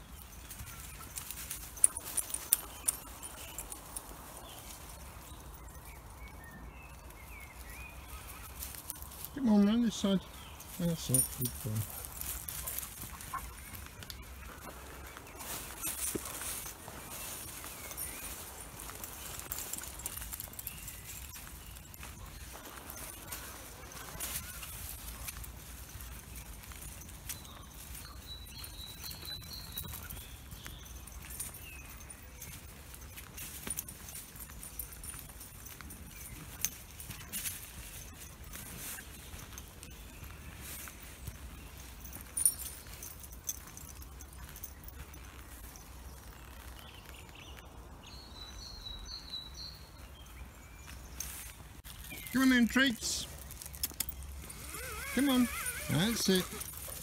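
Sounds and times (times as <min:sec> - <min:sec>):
footsteps on dirt path: 0:00.0 - 0:57.0.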